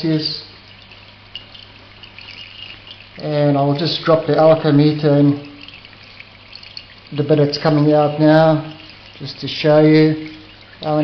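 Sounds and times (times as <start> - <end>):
liquid trickling into glass jug: 0.0 - 11.0.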